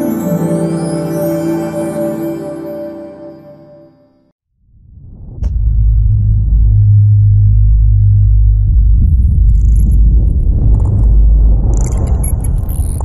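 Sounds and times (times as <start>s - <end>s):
deep rumble: 4.6s - 13.0s.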